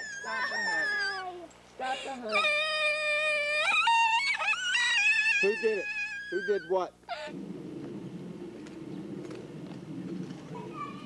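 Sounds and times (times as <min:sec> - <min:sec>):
low rumbling noise: 0:07.3 - 0:11.0.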